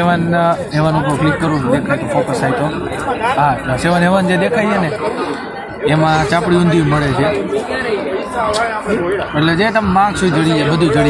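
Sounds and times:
man talking: 0.0 - 7.6, 8.4 - 11.0
people chattering: 0.0 - 11.0.

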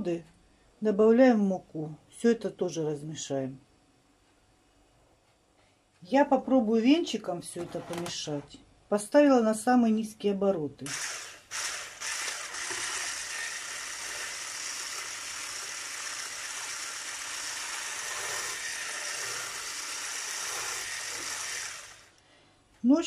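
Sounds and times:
electric hand blender whirring: 10.9 - 22.2.

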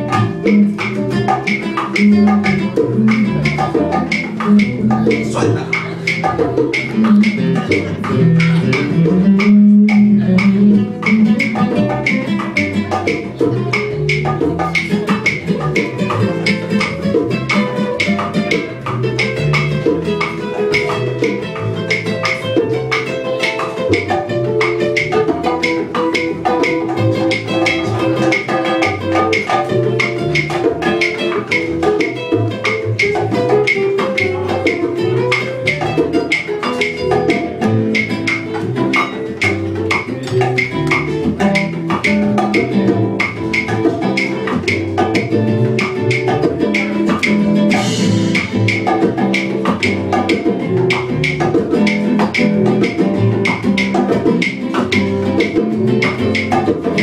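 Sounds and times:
live jazz band playing: 0.0 - 57.0
quick percussion strokes: 0.0 - 57.0
upright bass line: 0.0 - 57.0.

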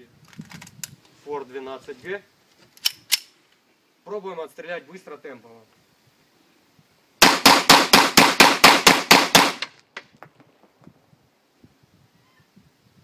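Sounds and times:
pistol firing blanks rapidly: 7.2 - 9.6.

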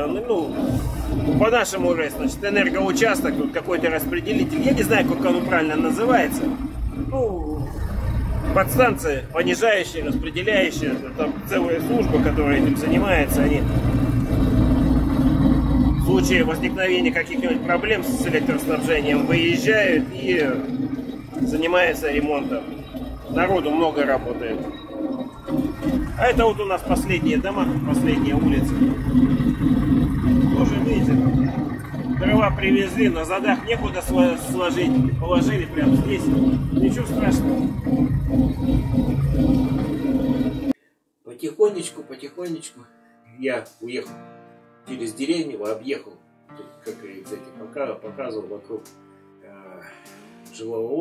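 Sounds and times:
tractor diesel engine running: 0.0 - 40.8.

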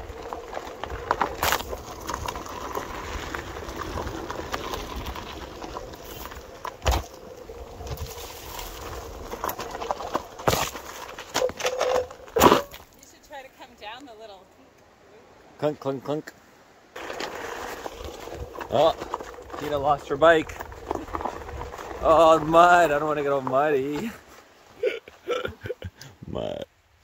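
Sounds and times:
tyre rumbling on gravel: 0.0 - 13.8, 17.0 - 25.8.

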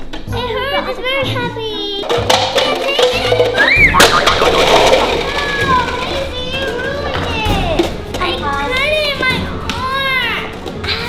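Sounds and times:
plastic cups clattering onto floor: 2.0 - 8.4.

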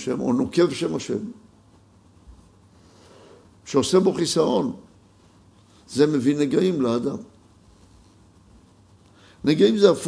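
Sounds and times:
faint room hiss: 0.0 - 10.0
man speaking: 3.7 - 4.9, 5.9 - 7.3, 9.4 - 10.0.

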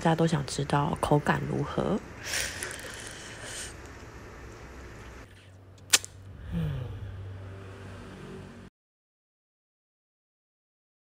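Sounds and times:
low hum: 0.0 - 8.7
sharp click: 5.8 - 6.2.

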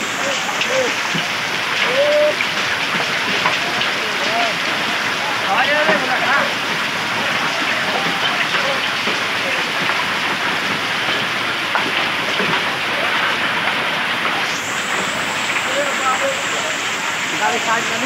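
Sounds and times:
hailstones ticking: 0.0 - 18.0
heavy rain hissing: 0.0 - 18.0.

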